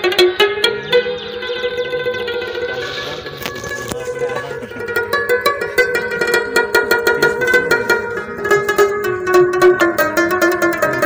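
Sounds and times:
clay pot drum: 0.0 - 11.0
plucked string melody: 0.0 - 11.0.

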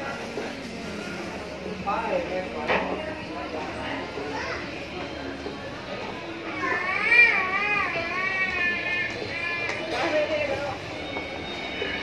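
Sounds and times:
background chatter of people: 0.0 - 12.0
children's voices: 4.2 - 4.9, 6.4 - 10.0.

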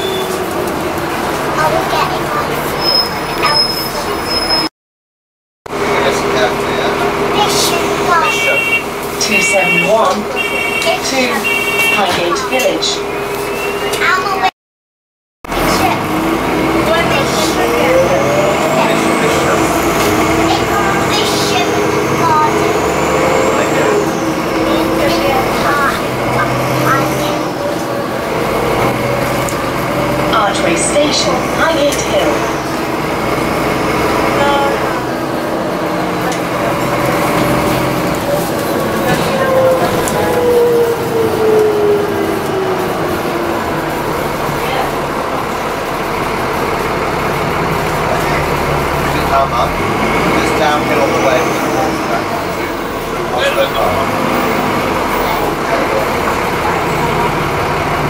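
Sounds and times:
bus engine and transmission whine: 0.0 - 4.7, 5.7 - 14.6, 15.4 - 58.0.

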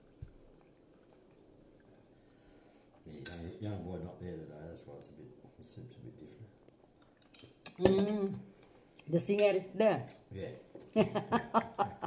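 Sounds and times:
cutlery clinking against dishes: 3.2 - 3.6.

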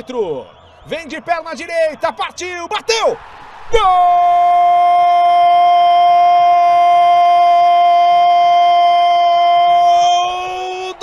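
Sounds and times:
man shouting long goal cry: 2.3 - 11.0.

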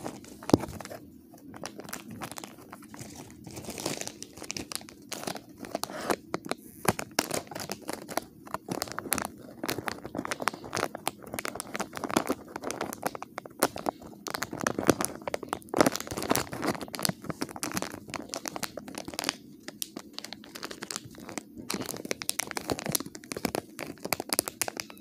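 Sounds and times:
plastic wrapper crinkling: 0.0 - 25.0.

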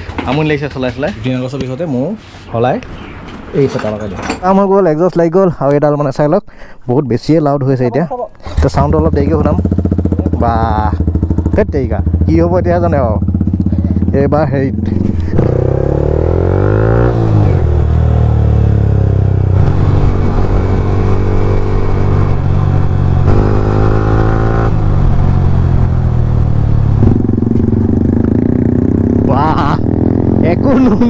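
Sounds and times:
motorcycle engine revving: 8.6 - 31.0.

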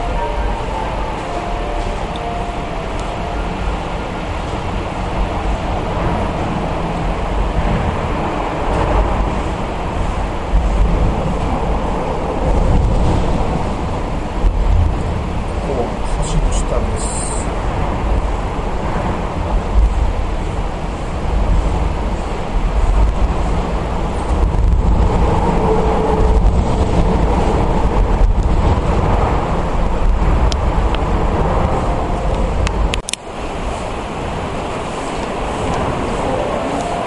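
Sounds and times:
road traffic rumble overhead: 0.0 - 37.0.

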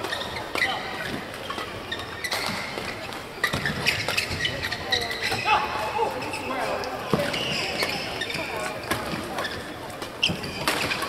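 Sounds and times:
high squeaks: 0.1 - 6.7.

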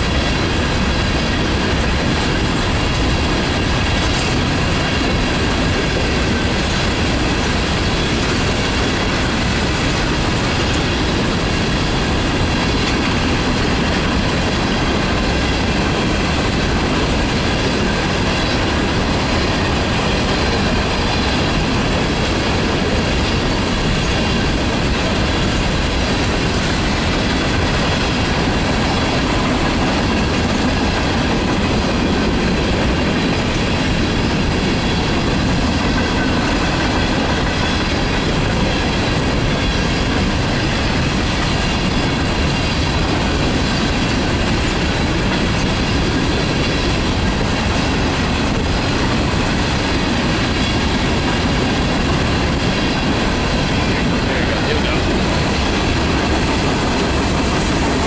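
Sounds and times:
freight train rumbling past: 0.0 - 58.0
rail joints clickety-clack: 0.0 - 58.0.

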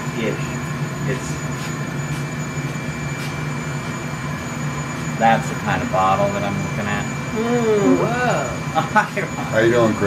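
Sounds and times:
furnace burner blower humming: 0.0 - 10.0.

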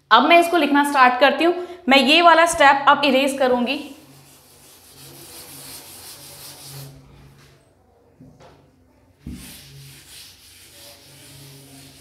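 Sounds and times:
duster scraping on blackboard: 4.0 - 7.1, 9.3 - 12.0.

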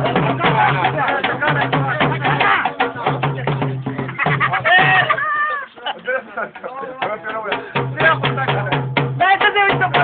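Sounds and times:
drum music: 0.0 - 5.5, 6.5 - 10.0
crowd noise: 0.0 - 10.0.

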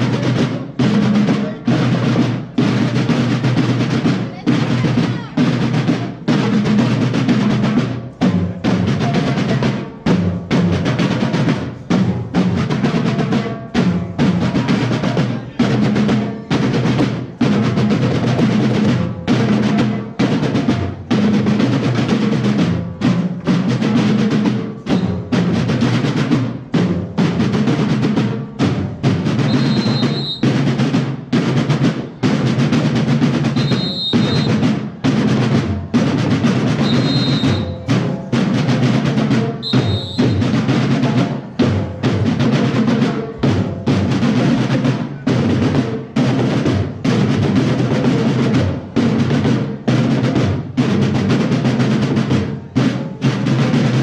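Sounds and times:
marching drum corps cadence: 0.0 - 54.0.

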